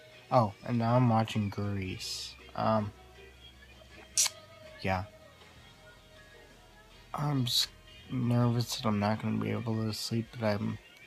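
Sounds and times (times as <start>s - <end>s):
faint film soundtrack: 0.0s - 11.0s
short sharp hiss: 4.2s - 4.4s.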